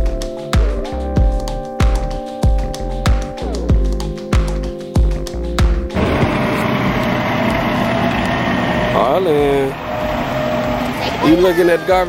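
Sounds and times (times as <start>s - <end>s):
music with heavy beat: 0.0s - 7.7s
garbage truck engine running: 5.9s - 11.7s.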